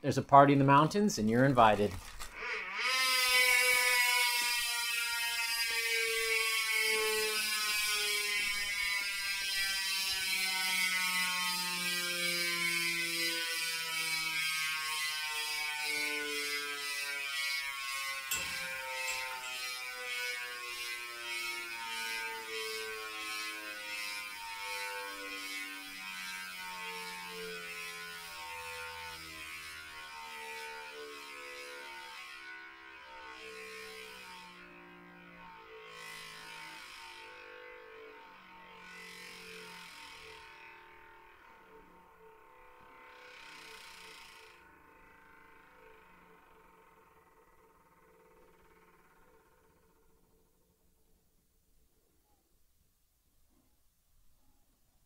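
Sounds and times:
freehub ratchet buzzing: 2.0s - 35.2s, 35.8s - 50.7s.

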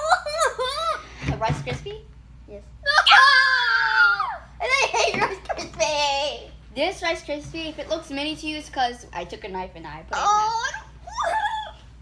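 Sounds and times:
child crying out: 2.8s - 4.5s, 11.0s - 11.9s
child squealing with laughter: 2.9s - 4.5s, 11.0s - 11.9s.

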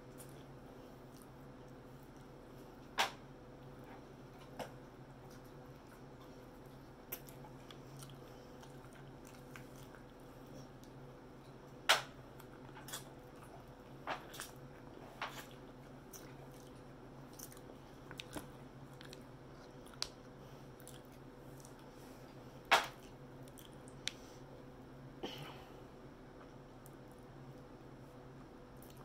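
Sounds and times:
chewing crispy fried meat: 0.0s - 24.4s
steady low hum: 0.0s - 29.0s.

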